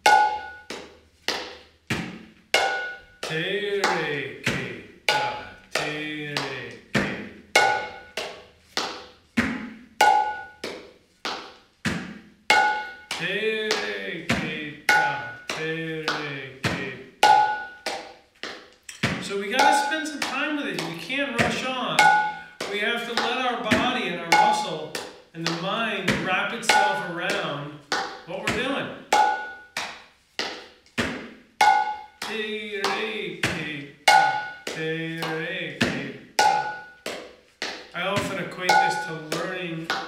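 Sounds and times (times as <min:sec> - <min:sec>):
hand drum played: 0:31.6 - 0:37.1.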